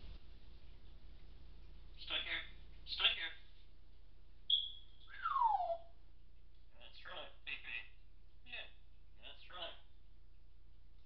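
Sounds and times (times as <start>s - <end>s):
parrot whistling: 4.5s - 5.9s.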